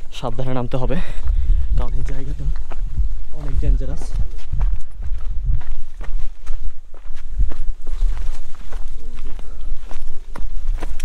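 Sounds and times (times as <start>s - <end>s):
footsteps in sandals on gravel: 1.2s - 11.0s.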